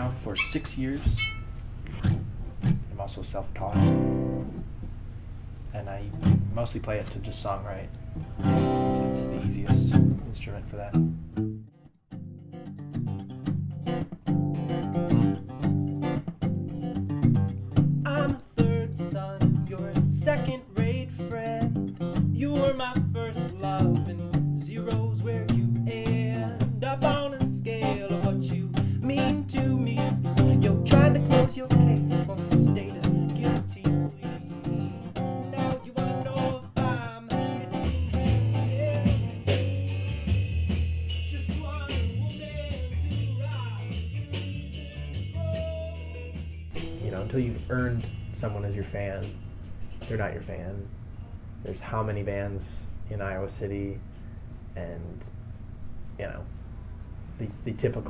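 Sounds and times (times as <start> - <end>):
low bass notes: 0.0 - 4.9, 5.8 - 35.5, 36.2 - 54.1
strummed guitar: 0.0 - 4.9, 5.7 - 50.9
man singing: 18.1 - 49.3.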